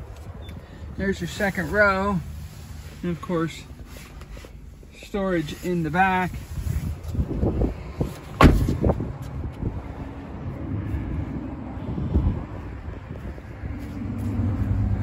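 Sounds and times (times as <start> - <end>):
car door shutting: 8.1 - 9.0.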